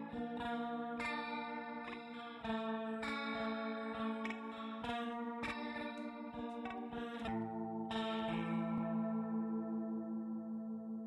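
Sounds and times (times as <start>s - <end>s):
sustained ringing chord: 7.3s - 11.0s.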